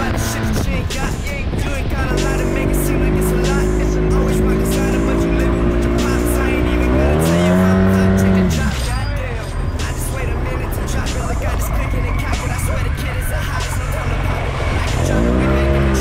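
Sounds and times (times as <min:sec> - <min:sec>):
vehicle engine running and revving: 0:00.0 - 0:16.0.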